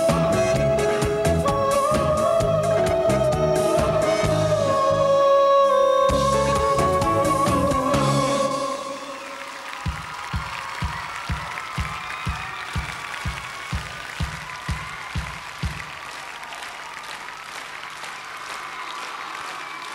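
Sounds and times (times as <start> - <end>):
audience applauding: 6.7 - 19.9.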